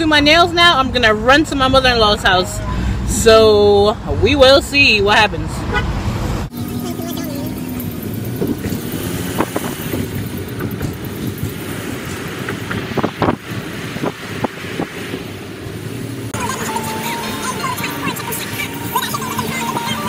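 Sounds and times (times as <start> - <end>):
road noise inside car cabin: 0.0 - 20.0.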